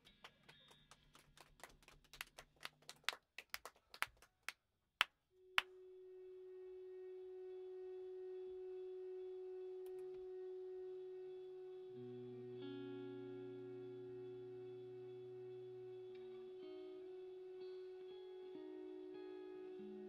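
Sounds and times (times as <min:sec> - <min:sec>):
electric guitar note: 0:05.4 - 0:20.0.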